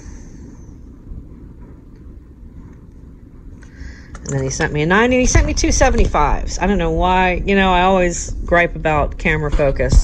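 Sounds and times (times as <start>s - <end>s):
low background rumble: 0.0s - 10.0s.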